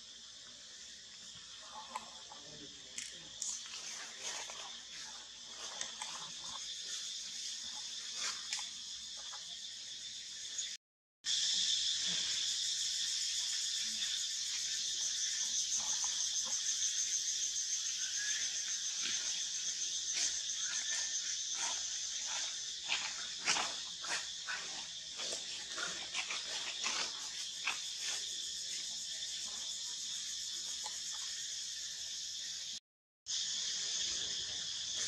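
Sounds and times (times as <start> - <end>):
forest insects buzzing: 0.0 - 35.0.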